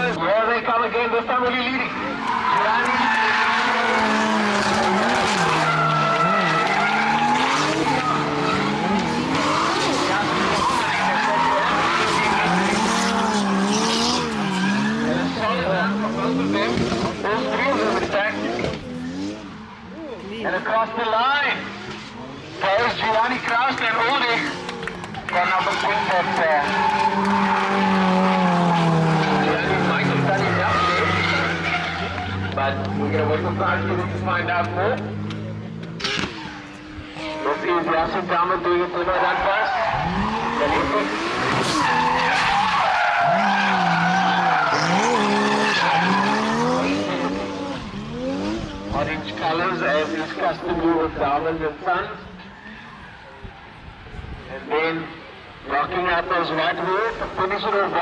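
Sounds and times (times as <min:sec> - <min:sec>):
tyres skidding: 0:00.0 - 0:58.0
car engine revving: 0:01.1 - 0:53.2.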